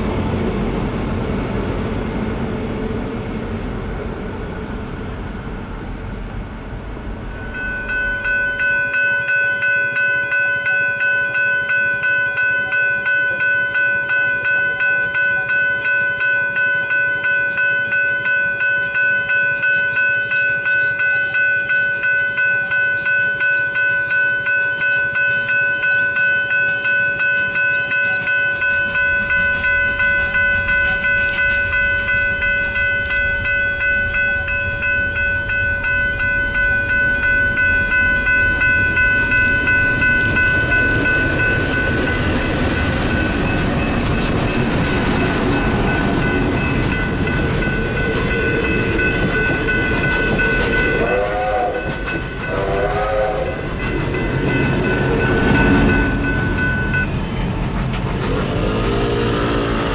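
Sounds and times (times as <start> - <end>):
steam rush and wheel noise: 0.0 - 59.9
train rumble: 0.0 - 59.9
level crossing warning bell: 7.0 - 57.6.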